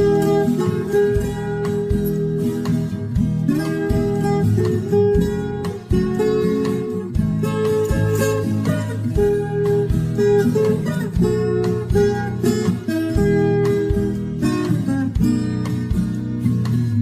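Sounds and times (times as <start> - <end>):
acoustic guitars plucked melody: 0.0 - 17.0
steady bass line: 0.0 - 17.0
strummed guitar chords: 0.0 - 17.0.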